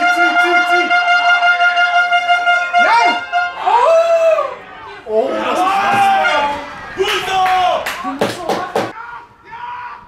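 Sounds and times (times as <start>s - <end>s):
hand claps: 7.1s - 9.0s.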